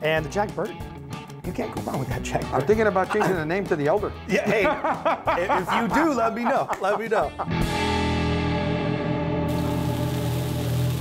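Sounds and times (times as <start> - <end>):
background music with held chords: 0.0 - 11.0
bacon sizzling in a pan: 9.5 - 11.0.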